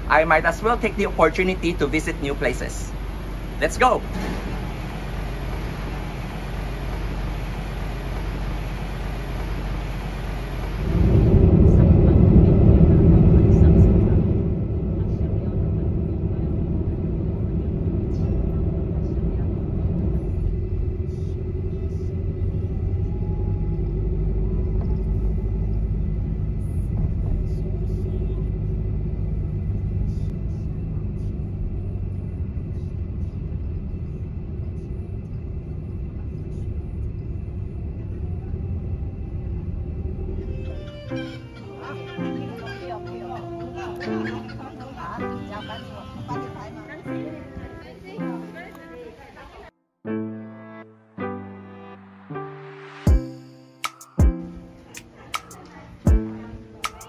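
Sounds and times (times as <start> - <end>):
road and engine rumble: 0.0 - 49.8, 51.4 - 57.0.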